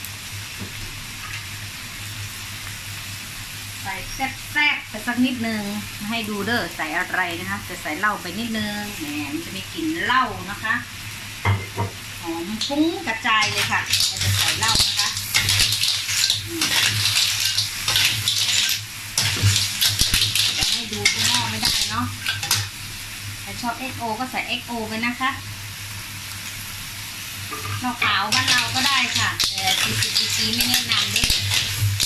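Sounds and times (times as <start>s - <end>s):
clams sizzling in a wok: 0.0s - 32.0s
metal spatula scraping a wok: 27.5s - 32.0s.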